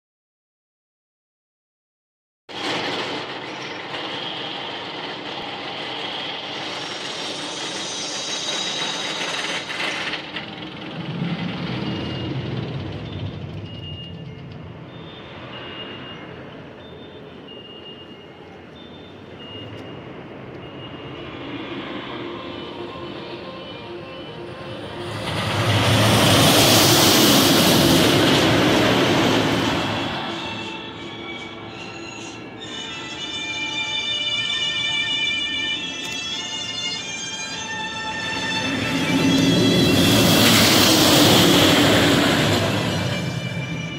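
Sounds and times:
roller coaster train rumbling on track: 2.5s - 43.9s.

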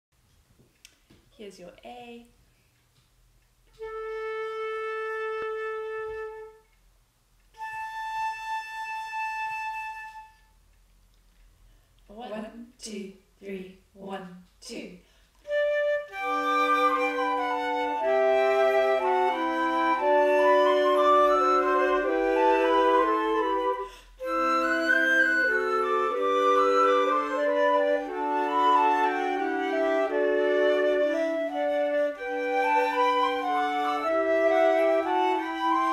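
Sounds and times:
flute holding a note: 3.8s - 6.7s, 7.6s - 10.6s, 15.5s - 35.9s.

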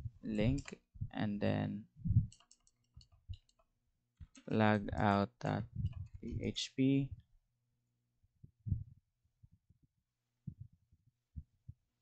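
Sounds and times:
computer keyboard keystrokes: 2.3s - 3.6s.

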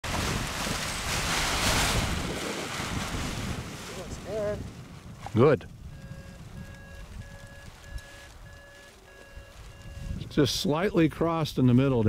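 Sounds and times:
strong wind buffeting microphone: 0.0s - 8.5s, 9.4s - 12.0s.

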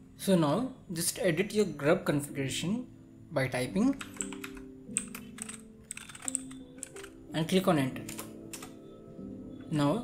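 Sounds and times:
computer keyboard typing: 3.9s - 7.2s, 8.0s - 8.8s.

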